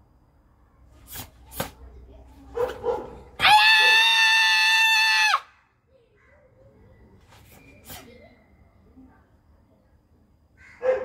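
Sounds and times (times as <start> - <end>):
girl shouting: 3.4 - 5.5.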